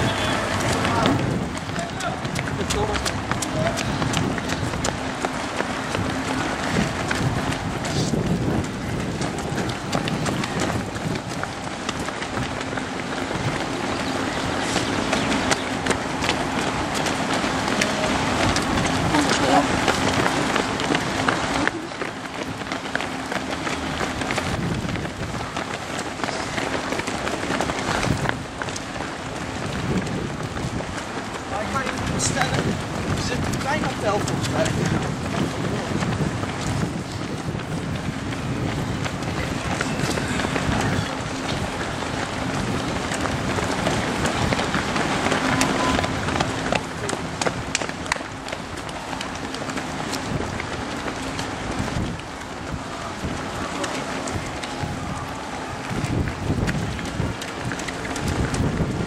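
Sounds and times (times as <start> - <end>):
running footsteps on asphalt: 0.0 - 59.0
spectators' voices: 38.2 - 58.6.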